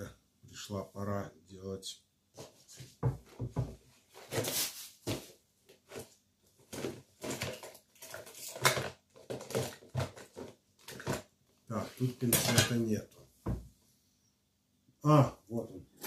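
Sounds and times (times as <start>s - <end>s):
tools rattling in plastic box: 6.7s - 11.3s.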